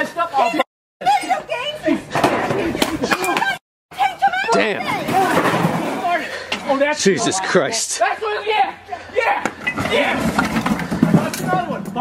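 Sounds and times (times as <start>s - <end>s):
object smashing on concrete: 9.7s - 11.8s.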